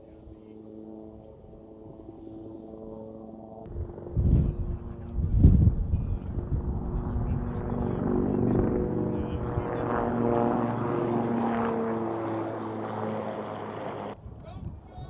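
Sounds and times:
helicopter rumble: 0:00.0 - 0:15.0.

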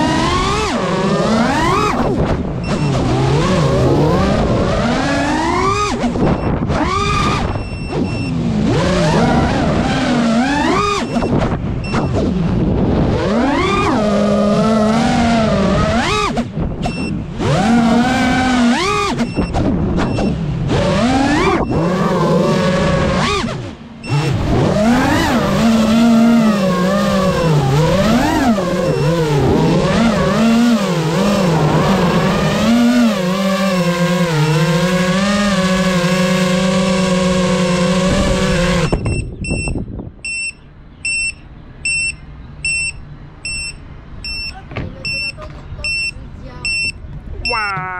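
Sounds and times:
drone motors whining: 0:00.0 - 0:46.1
electronic beeper: 0:10.7 - 0:12.2, 0:38.8 - 0:47.9.

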